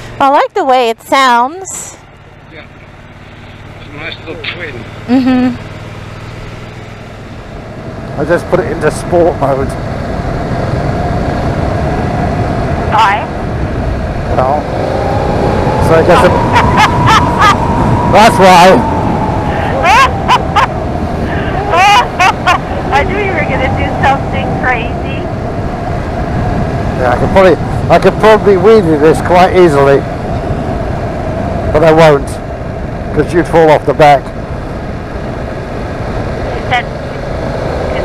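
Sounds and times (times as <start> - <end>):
motorcycle riding: 0.0 - 38.0
road noise: 0.0 - 38.0
wind noise: 7.5 - 38.0
woman squealing and laughing: 16.2 - 17.9, 19.5 - 23.0.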